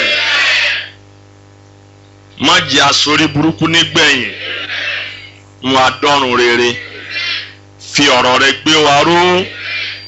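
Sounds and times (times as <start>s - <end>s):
congregation shouting: 0.0s - 1.0s, 3.8s - 5.4s
cassette recording hum: 0.0s - 10.0s.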